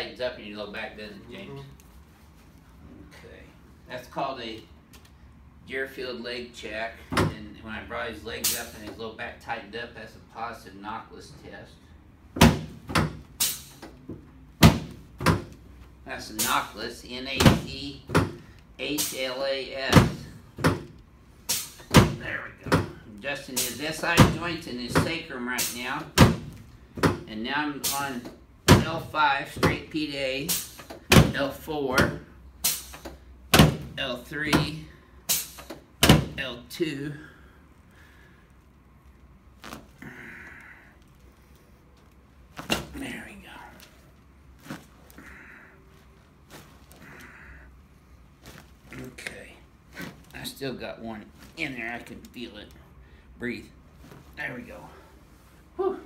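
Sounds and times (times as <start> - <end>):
rustling: 38.0 - 50.6, 51.2 - 52.6, 53.8 - 55.7
spinal joint cracking: 39.0 - 47.7, 48.3 - 50.5.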